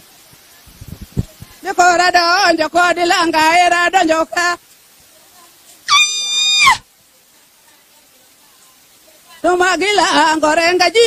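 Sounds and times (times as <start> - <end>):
faint background murmur: 0.0 - 2.7, 4.2 - 10.9
shrill high-pitched cry: 5.9 - 6.9.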